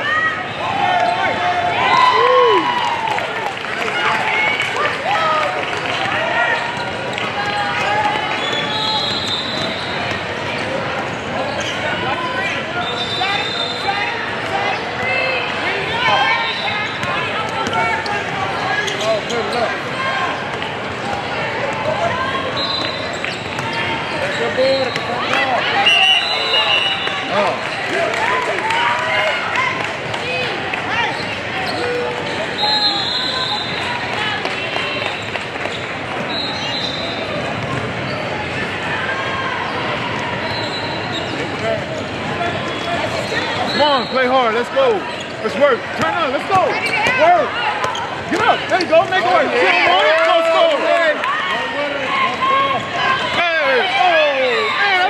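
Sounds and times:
hubbub of many voices: 0:00.0 - 0:55.0.

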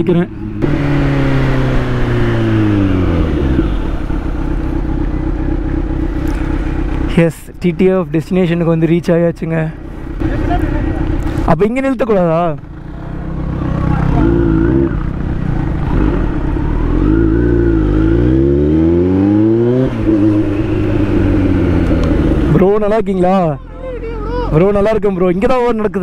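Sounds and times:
motorcycle engine revving: 0:00.0 - 0:08.8, 0:09.8 - 0:25.5
person calling out: 0:23.3 - 0:24.7.

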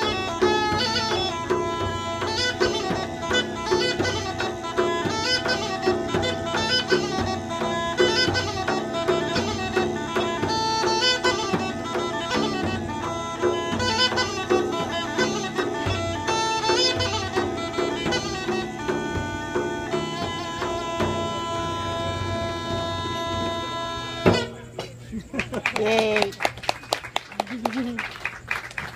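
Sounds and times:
bagpipe playing fast tune: 0:00.0 - 0:24.6
frame drum beating: 0:00.0 - 0:25.0.

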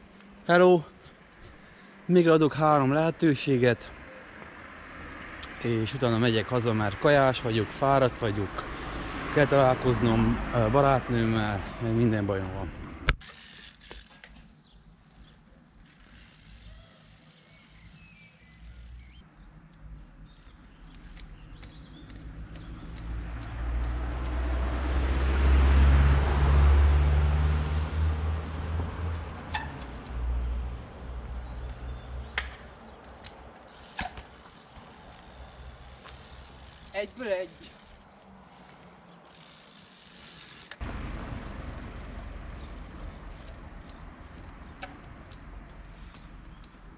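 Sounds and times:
vehicle passing on road: 0:03.4 - 0:13.1, 0:15.8 - 0:46.9.

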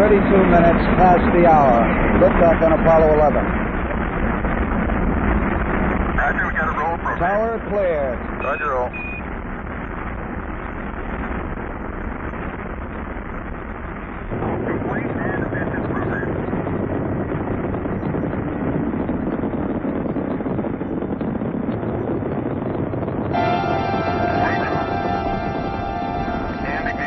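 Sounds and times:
rocket engine rumble: 0:00.0 - 0:27.0.

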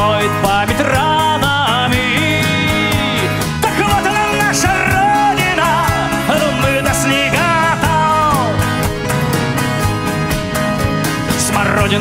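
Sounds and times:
accordion: 0:00.0 - 0:12.0
acoustic guitars: 0:00.0 - 0:12.0
bass: 0:00.0 - 0:12.0.

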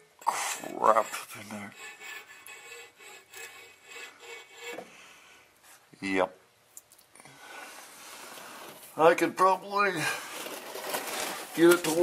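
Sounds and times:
faint steady hum: 0:00.0 - 0:11.6.

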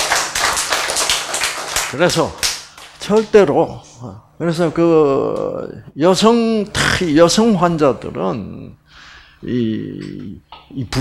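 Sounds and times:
audience clapping: 0:00.0 - 0:03.4.

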